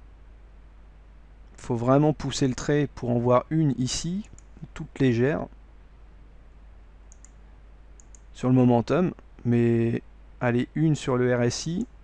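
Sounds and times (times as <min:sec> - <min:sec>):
low hiss and hum: 0:00.0 - 0:12.0
computer mouse clicks: 0:07.1 - 0:07.4, 0:08.0 - 0:08.3.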